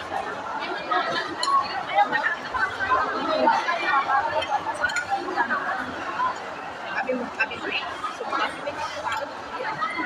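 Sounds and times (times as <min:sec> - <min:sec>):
chatter of voices: 0:00.0 - 0:10.0
cutlery clinking: 0:04.8 - 0:05.2.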